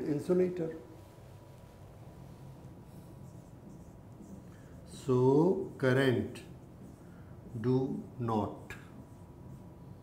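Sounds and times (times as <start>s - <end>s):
marker pen writing on whiteboard: 1.1s - 10.0s.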